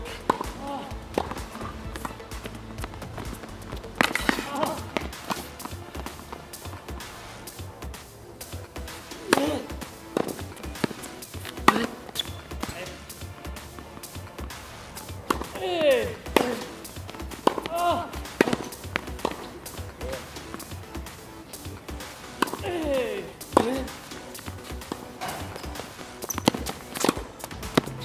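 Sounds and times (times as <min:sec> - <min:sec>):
tennis ball hits and bounces: 0:00.0 - 0:28.0.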